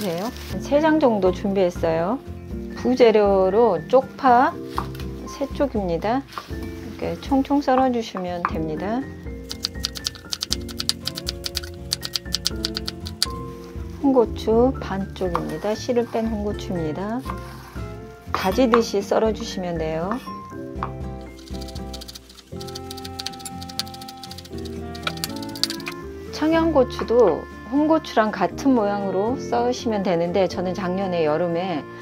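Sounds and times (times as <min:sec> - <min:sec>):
background music: 0:00.0 - 0:32.0.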